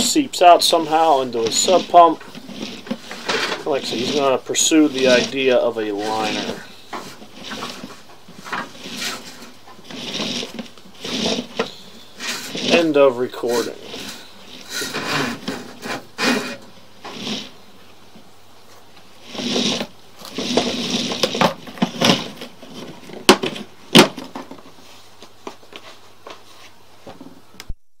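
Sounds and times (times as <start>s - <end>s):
equipment rustling and clattering: 0.0s - 17.6s, 18.6s - 27.4s.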